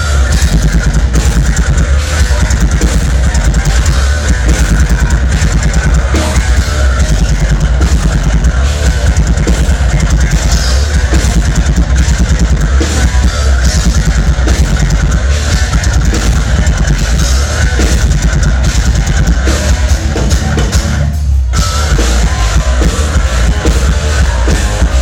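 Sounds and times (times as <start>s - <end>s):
busy drum kit: 0.0s - 25.0s
heavy distorted guitars: 0.0s - 25.0s.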